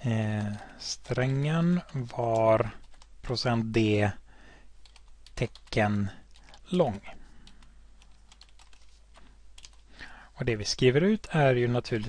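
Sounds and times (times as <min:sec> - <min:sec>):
computer keyboard typing: 0:00.2 - 0:03.1, 0:04.8 - 0:06.8, 0:07.4 - 0:09.8.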